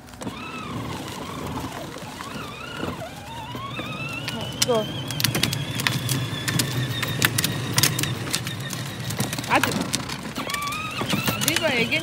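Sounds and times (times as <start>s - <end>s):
electric toy motor whine: 0.0s - 12.0s
plastic wheels clicking on asphalt: 0.0s - 12.0s.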